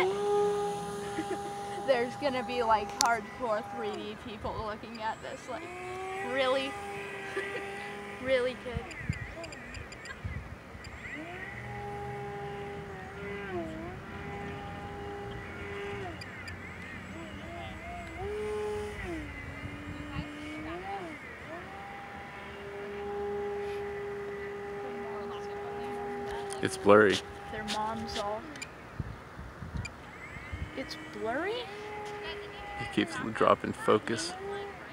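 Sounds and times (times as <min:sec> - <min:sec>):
wind noise on microphone: 0:00.0 - 0:33.4
model plane motor buzzing: 0:00.0 - 0:34.9.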